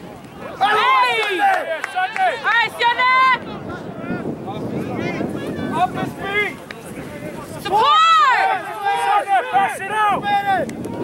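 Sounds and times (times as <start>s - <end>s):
people shouting: 0.3s - 4.3s, 7.4s - 11.0s.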